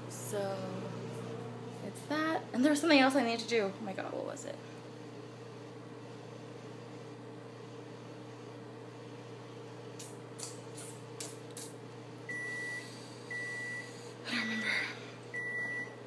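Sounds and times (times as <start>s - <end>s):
microwave oven humming: 0.0s - 16.0s
microwave oven beeps: 12.1s - 14.1s, 15.2s - 16.0s.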